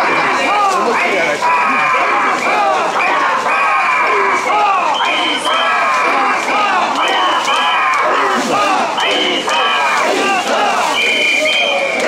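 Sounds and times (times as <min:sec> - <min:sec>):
crowd chanting in unison: 0:00.0 - 0:12.0
whistle double blasts: 0:10.9 - 0:12.0.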